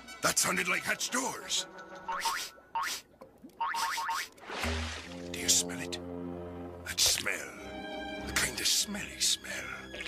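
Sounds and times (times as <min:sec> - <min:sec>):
background music: 0:00.0 - 0:02.6, 0:04.4 - 0:10.0.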